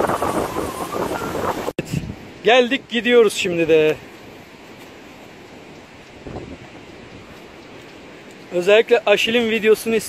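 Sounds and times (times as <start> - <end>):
wind noise on microphone: 0.0 - 2.4, 5.6 - 8.2.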